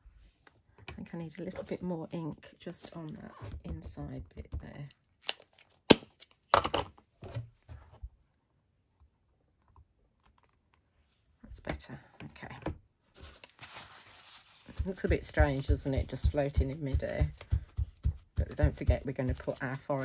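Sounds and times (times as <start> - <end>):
tissue rustling and crinkling: 13.1 - 15.8.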